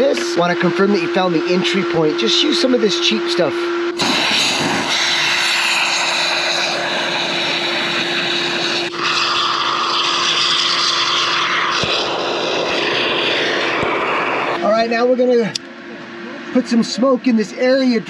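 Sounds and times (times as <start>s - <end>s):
foam spray can hissing: 4.0s - 7.9s, 8.8s - 14.3s.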